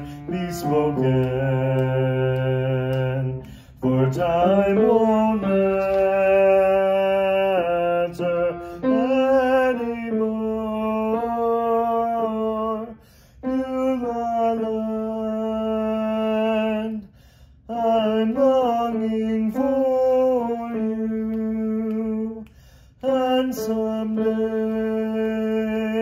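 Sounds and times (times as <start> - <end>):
man singing a hymn: 0.0 - 26.0.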